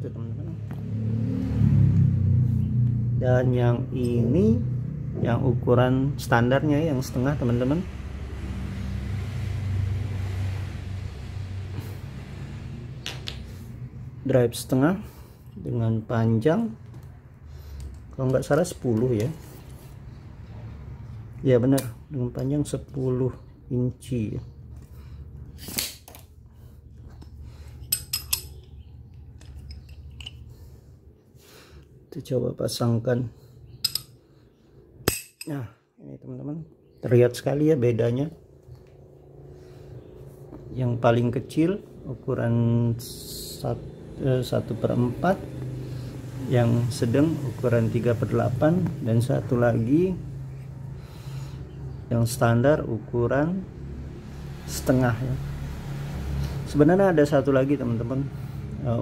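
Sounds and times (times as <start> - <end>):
passing vehicle rumble: 0.0 - 25.6, 37.1 - 59.0
metallic socket click: 33.8 - 34.1.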